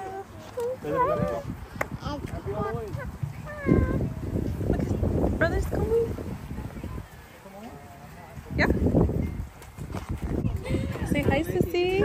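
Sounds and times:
child squealing and babbling: 3.5 - 4.0.

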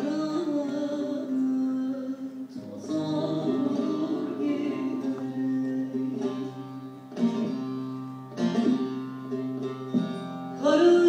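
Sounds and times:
long-necked lutes playing: 0.0 - 11.0
sharp plucked strokes: 2.6 - 11.0.

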